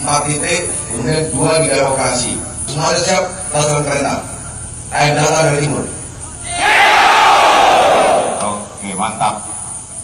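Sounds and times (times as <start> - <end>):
soldiers shouting in unison: 6.4 - 8.4.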